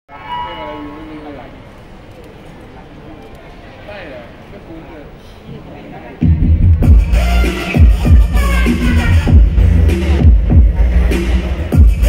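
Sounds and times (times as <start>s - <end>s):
hum of the hall: 0.1s - 12.0s.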